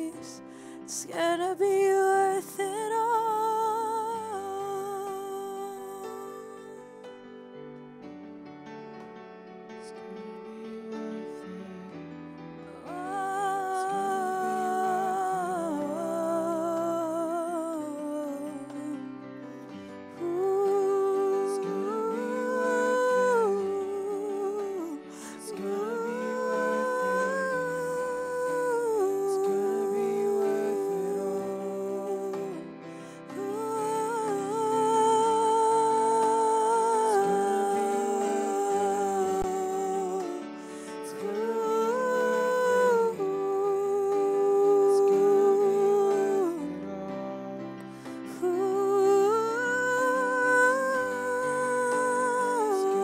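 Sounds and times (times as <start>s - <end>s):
woman singing worship melody: 0.0s - 7.2s, 9.8s - 53.0s
keyboard chords: 0.0s - 53.0s.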